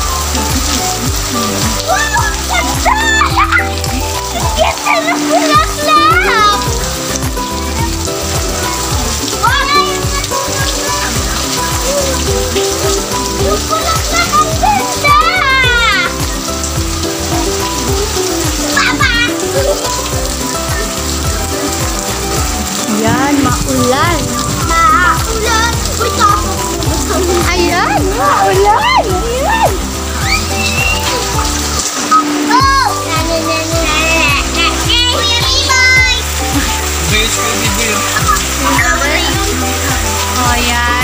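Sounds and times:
background music: 0:00.0 - 0:41.0
steady rain hiss: 0:00.0 - 0:41.0
children calling out: 0:00.1 - 0:21.6, 0:22.3 - 0:36.9, 0:37.9 - 0:41.0.

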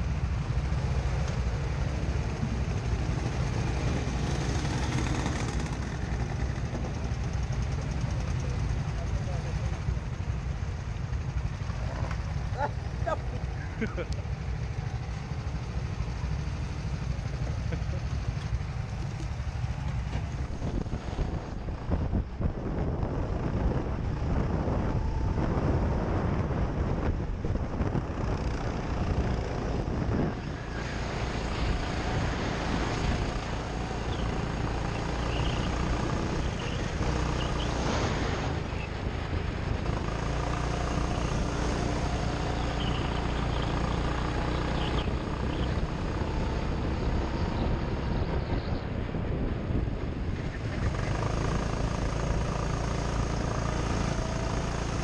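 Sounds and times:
go-kart engines idling: 0:00.0 - 0:22.4, 0:27.2 - 0:55.0
people's voices: 0:11.8 - 0:14.3.

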